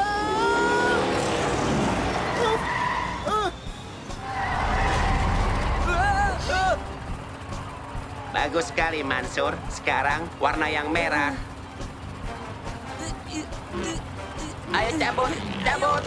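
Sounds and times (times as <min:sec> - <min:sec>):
background music: 0:00.0 - 0:16.0
cartoon cars rushing past: 0:00.0 - 0:16.0
low engine rumble: 0:00.0 - 0:16.0
tyres skidding: 0:00.0 - 0:16.0.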